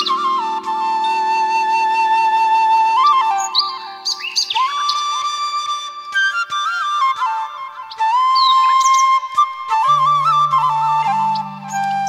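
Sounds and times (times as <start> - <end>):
bird chirps: 0.0 - 5.5, 7.9 - 9.4
bamboo flute long note: 0.0 - 12.0.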